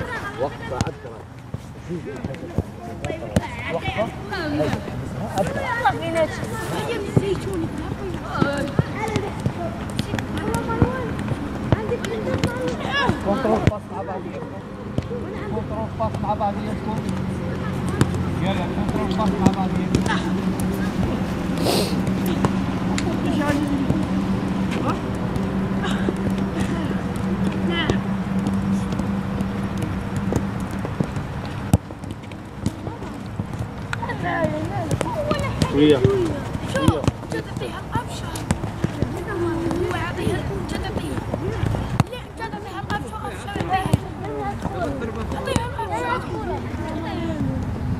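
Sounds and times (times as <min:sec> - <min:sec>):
footballs being kicked: 0:00.7 - 0:47.8
distant shouts: 0:02.6 - 0:16.0
football being kicked: 0:11.7 - 0:14.0, 0:24.7 - 0:40.0.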